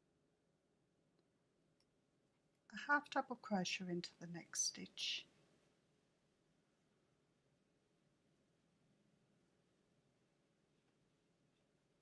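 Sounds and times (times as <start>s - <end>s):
woman speaking: 2.8s - 5.3s.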